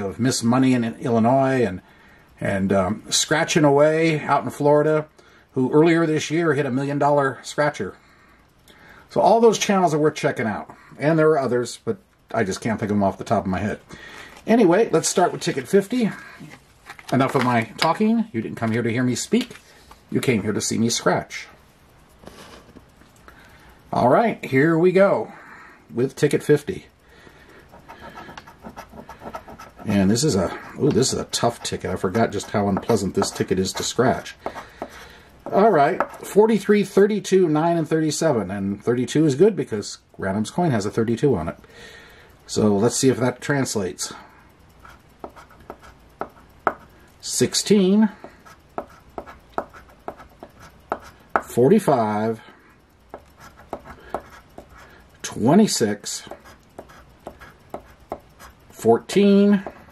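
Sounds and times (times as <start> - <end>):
coin scratching a lottery ticket: 27.7 - 36.2, 44.8 - 46.8, 48.4 - 51.2, 53.1 - 54.9, 56.3 - 58.6.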